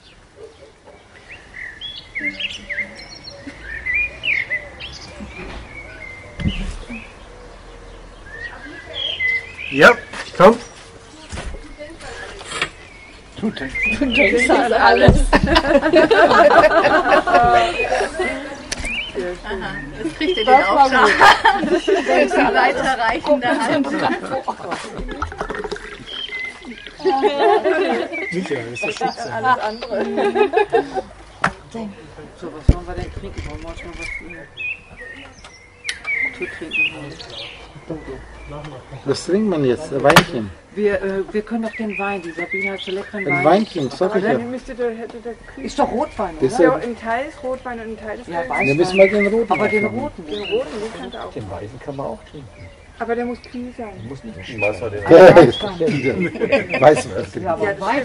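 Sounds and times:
bird chirping: 0.0 - 15.2, 17.6 - 22.1, 25.2 - 27.4, 28.0 - 30.2, 32.8 - 39.8, 41.4 - 57.4
indistinct overlapping conversation: 0.0 - 58.0.

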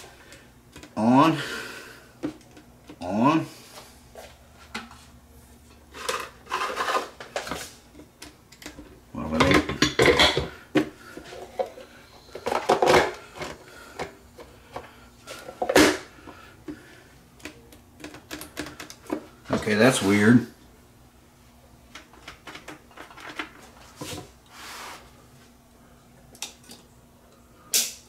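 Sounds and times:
coffee maker clattering and rattling: 5.7 - 16.1, 17.4 - 20.0, 21.9 - 24.3.

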